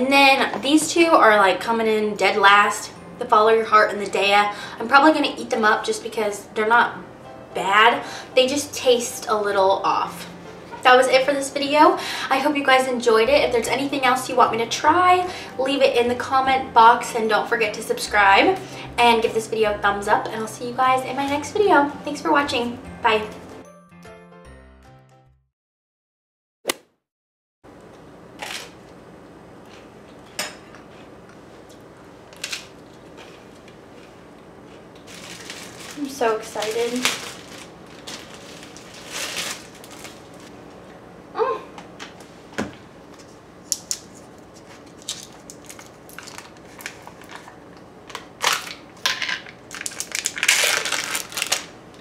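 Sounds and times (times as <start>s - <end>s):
plastic seal peeling and crinkling: 35.0s - 40.5s, 43.8s - 48.8s, 49.7s - 51.7s.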